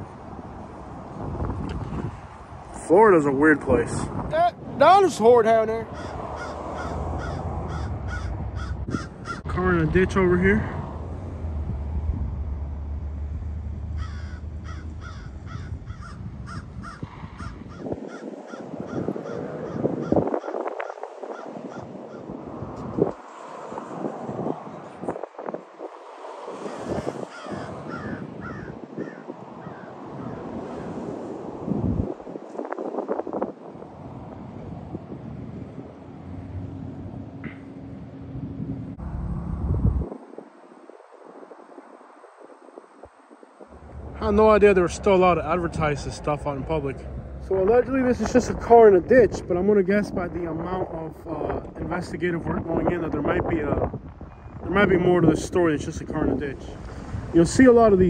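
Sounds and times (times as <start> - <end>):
vehicles passing: 0.0 - 58.0
birds calling: 5.0 - 9.6, 13.9 - 22.4, 26.5 - 31.0.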